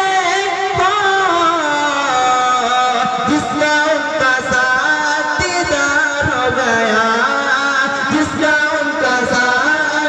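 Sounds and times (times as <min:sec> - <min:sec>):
man singing through loudspeakers: 0:00.0 - 0:10.0.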